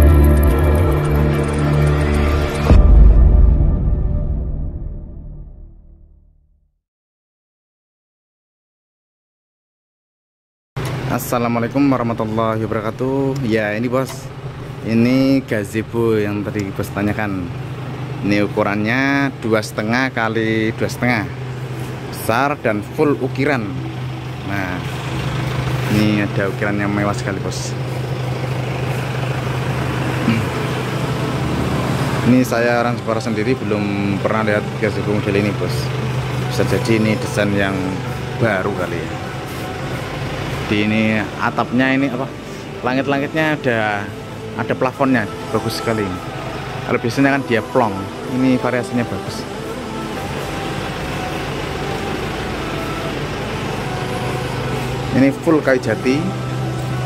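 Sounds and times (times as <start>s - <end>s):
low motor hum: 0.0s - 6.0s, 11.9s - 57.0s.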